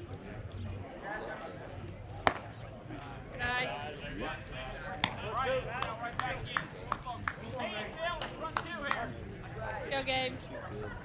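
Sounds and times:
baseball bat crack: 0:02.2 - 0:02.5, 0:05.0 - 0:07.4.

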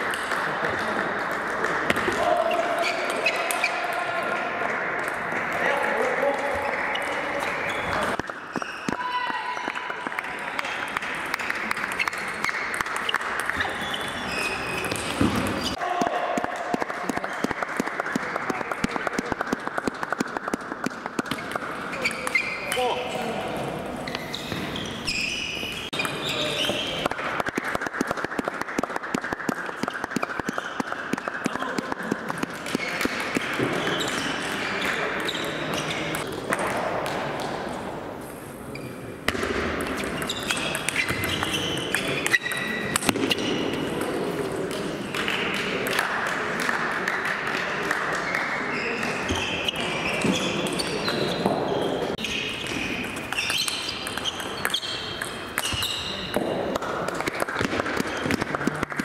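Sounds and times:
table tennis balls clicking: 0:09.6 - 0:15.7, 0:16.4 - 0:22.9, 0:25.8 - 0:37.6, 0:39.3 - 0:51.6, 0:52.5 - 0:59.0.

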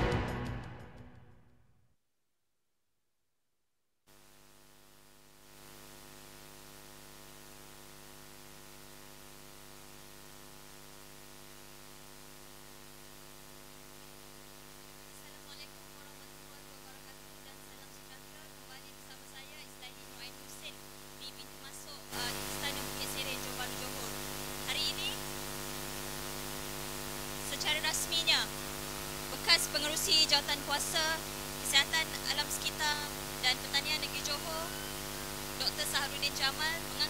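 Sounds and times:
faint electrical hum: 0:04.1 - 0:37.0
person speaking: 0:15.2 - 0:24.1, 0:29.3 - 0:34.9, 0:35.6 - 0:37.0.

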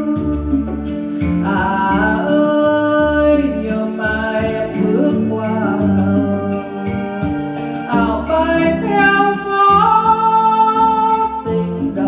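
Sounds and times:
guitar: 0:00.0 - 0:12.0
person singing: 0:00.0 - 0:12.0
steady beat: 0:00.0 - 0:12.0.

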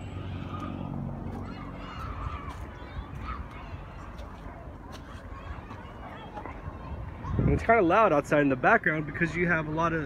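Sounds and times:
steady low rumble: 0:00.0 - 0:07.6
distant children shouting and playing: 0:00.0 - 0:10.0.

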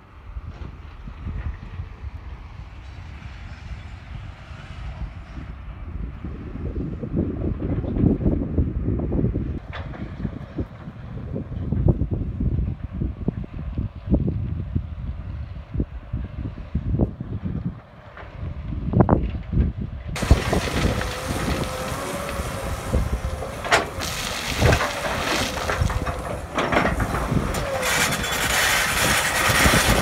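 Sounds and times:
wind buffeting microphone: 0:00.3 - 0:30.0.

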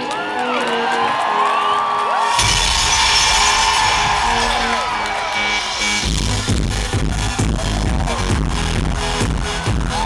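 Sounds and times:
crowd cheering and whistling: 0:00.0 - 0:10.0
heavy dance beat with bass: 0:05.3 - 0:10.0.

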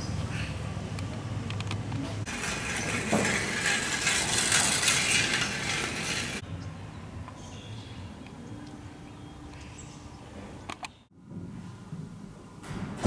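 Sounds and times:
outdoor ambience: 0:00.0 - 0:13.0.

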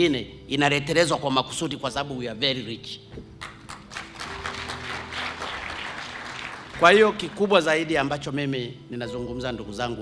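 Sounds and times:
audience applause: 0:03.4 - 0:07.8.

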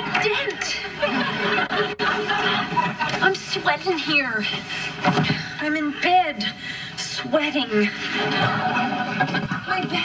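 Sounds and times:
studio audience laughing: 0:00.0 - 0:03.7, 0:07.8 - 0:10.0.

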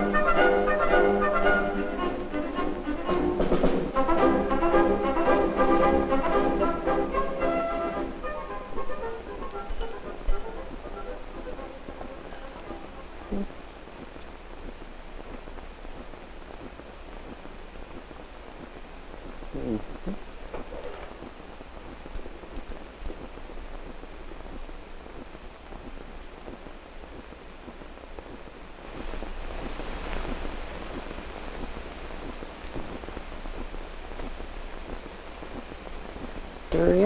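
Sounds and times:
film soundtrack hiss: 0:00.0 - 0:37.0
person murmuring: 0:13.2 - 0:13.6, 0:19.5 - 0:20.2.

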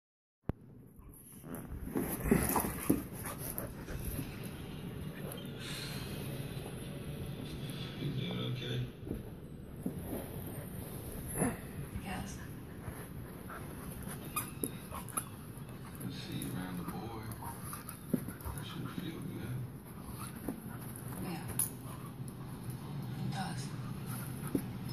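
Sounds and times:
dogs scuffling: 0:01.1 - 0:05.4, 0:08.9 - 0:23.1.

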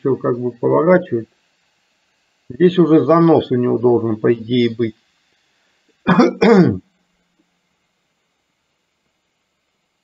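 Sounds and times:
man clearing his throat: 0:06.1 - 0:06.8.

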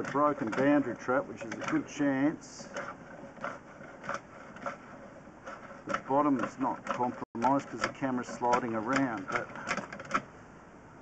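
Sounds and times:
push rod scraping in a pipe: 0:00.0 - 0:10.3.

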